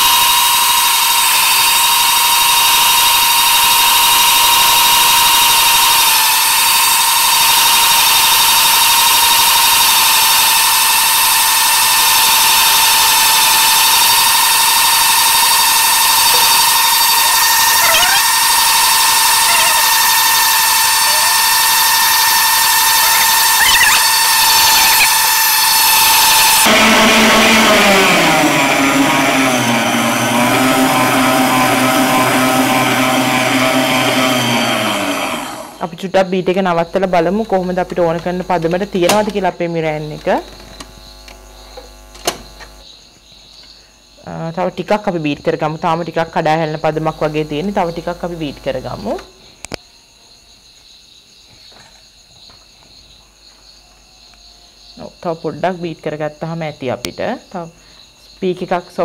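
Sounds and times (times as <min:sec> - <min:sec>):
stand mixer whining: 0:00.0 - 0:35.8.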